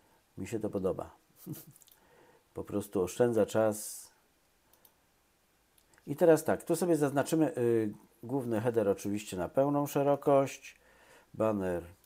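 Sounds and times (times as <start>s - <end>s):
computer mouse clicks: 4.7s - 5.0s.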